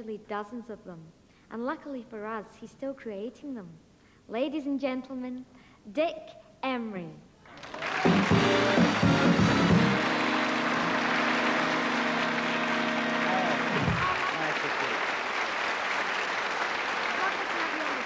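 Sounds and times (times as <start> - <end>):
studio audience applauding: 7.5 - 18.0
band play-on music: 8.0 - 14.1.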